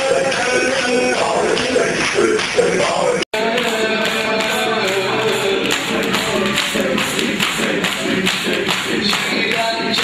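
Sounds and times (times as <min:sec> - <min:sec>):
fast even drum beat: 0:00.0 - 0:10.0
voices chanting: 0:03.4 - 0:10.0.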